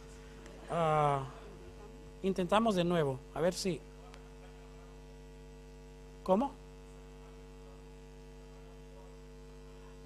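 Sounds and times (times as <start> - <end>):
electrical mains hum: 0.0 - 10.0.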